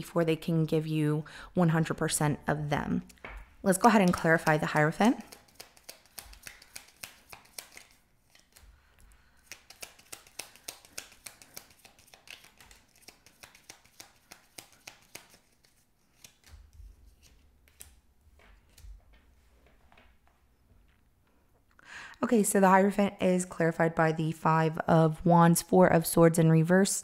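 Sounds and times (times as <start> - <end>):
cards being shuffled: 3.0 - 20.1.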